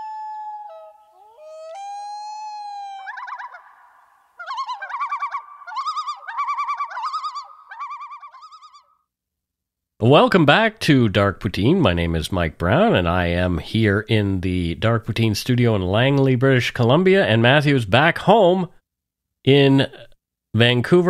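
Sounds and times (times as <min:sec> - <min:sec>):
loon tremolo call: 0:00.0 - 0:08.8
loon wailing calls: 0:00.0 - 0:08.9.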